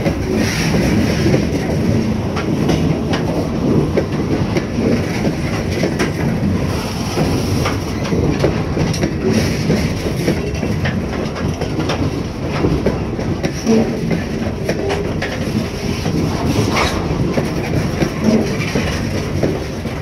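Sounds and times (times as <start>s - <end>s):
train wheels rumbling on rails: 0.0s - 20.0s
wheels clicking over rail joints: 0.0s - 20.0s.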